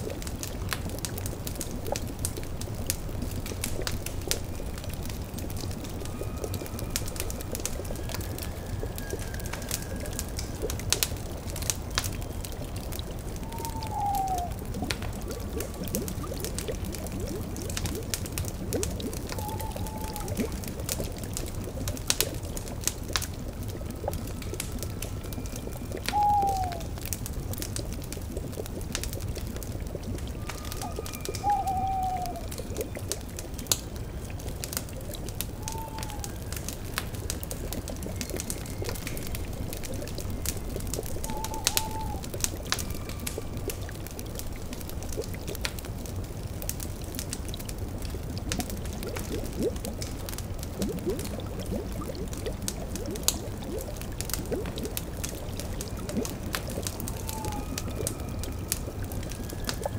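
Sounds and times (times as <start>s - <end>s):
bubbling cauldron: 0.0s - 59.9s
crackling wood fire: 0.0s - 59.9s
owl hooting: 13.4s - 14.6s, 19.4s - 20.4s, 26.1s - 26.9s, 30.8s - 32.5s, 35.6s - 36.4s, 41.2s - 42.3s, 57.1s - 58.9s.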